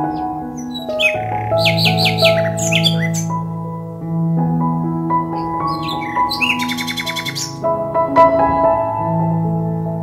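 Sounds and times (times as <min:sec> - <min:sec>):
bird chirps and trills: 0:00.0 - 0:03.4, 0:05.4 - 0:07.6
gentle ambient music: 0:00.0 - 0:10.0.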